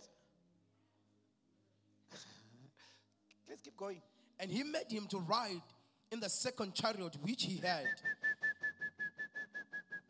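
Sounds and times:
shrill trilled whistle: 7.8 - 10.0.

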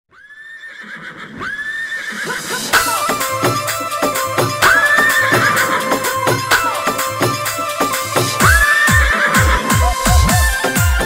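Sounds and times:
horse whinnying: 0.3 - 2.4, 4.6 - 6.2, 8.4 - 10.6.

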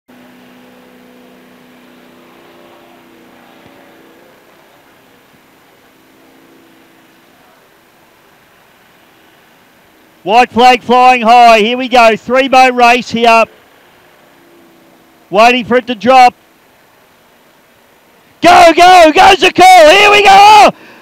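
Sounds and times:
powerboat engines droning: 0.1 - 21.0.

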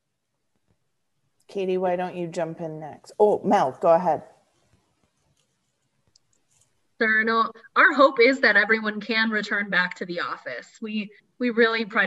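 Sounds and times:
faint clicks: 4.6 - 6.8.

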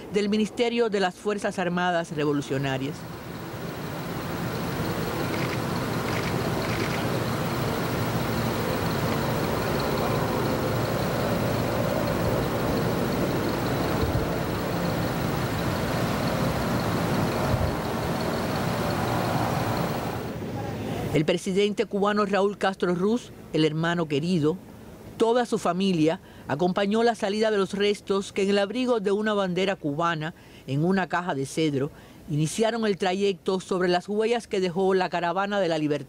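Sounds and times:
vehicle engine running: 3.0 - 20.4.

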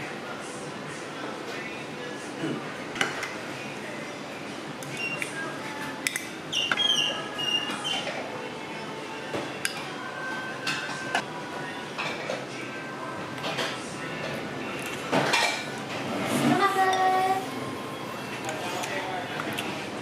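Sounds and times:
restaurant background noise: 0.0 - 20.0.

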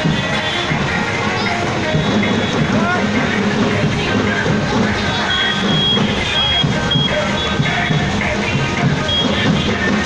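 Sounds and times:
crowd chatter: 0.0 - 10.0
motorcycle and scooter traffic: 0.0 - 10.0
high electronic beep pulses: 5.3 - 7.2.

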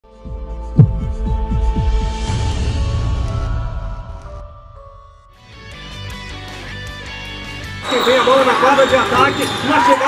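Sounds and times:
intro music: 0.3 - 3.5
quick low thumps dropping in pitch: 0.7 - 2.0
low synthesized hum: 0.8 - 1.9
loud deep hit: 0.8 - 2.6.

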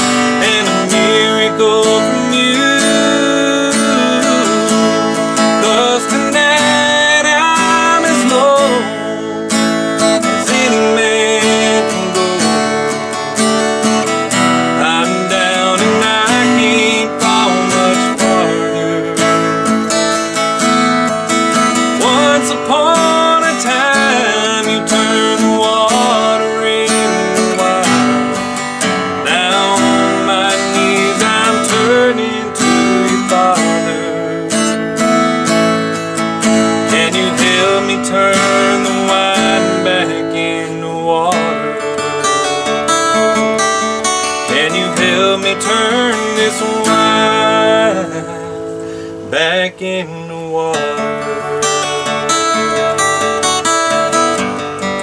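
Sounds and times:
acoustic guitar picking and strumming: 0.0 - 55.0.

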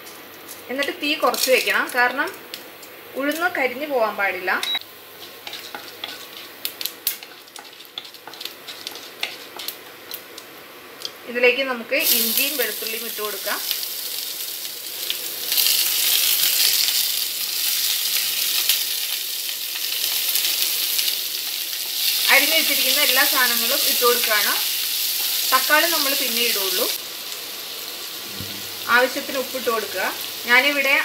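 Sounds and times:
vegetables sizzling in hot oil: 0.0 - 31.0
wooden spatula stirring: 5.1 - 9.8.

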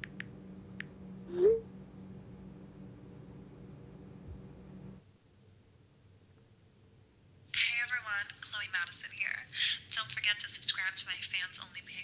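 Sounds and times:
woman's high-pitched voice from laptop: 7.6 - 12.0.

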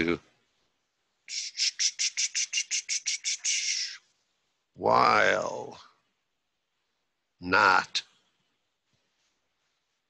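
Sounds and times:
bird chirping: 1.3 - 4.0.

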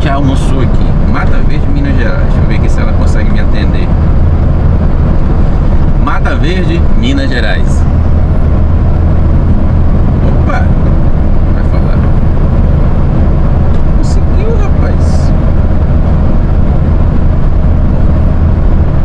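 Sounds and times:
road noise: 0.0 - 19.0
truck diesel engine drone: 0.0 - 19.0.

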